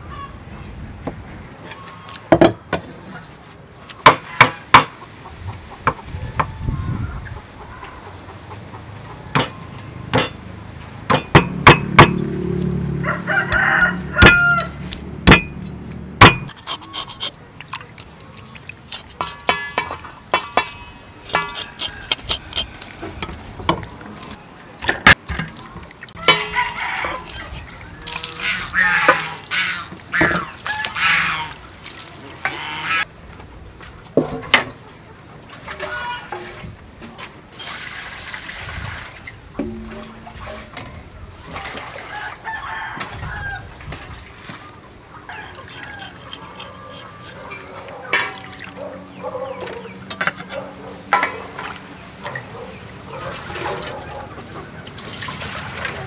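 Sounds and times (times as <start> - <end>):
cleaver striking chopping board: 11.1 - 12.2, 15.3 - 15.6, 16.2 - 16.5
rooster crowing: 12.9 - 14.9, 26.2 - 29.2, 42.0 - 43.8, 45.3 - 47.9
fowl calling: 26.2 - 31.6, 32.4 - 33.1.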